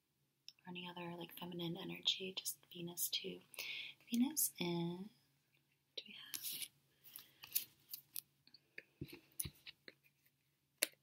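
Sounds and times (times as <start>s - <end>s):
cards being shuffled: 6.3s - 8.2s.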